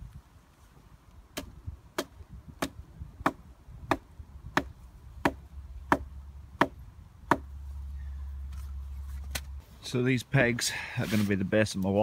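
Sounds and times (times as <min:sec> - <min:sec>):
wooden peg being hammered: 0:01.4 - 0:07.5.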